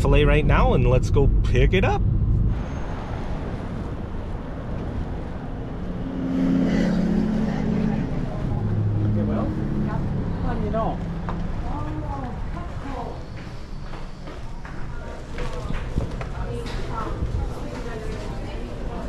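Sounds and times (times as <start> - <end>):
low engine hum: 0.0 - 13.2
traffic noise: 0.0 - 19.0.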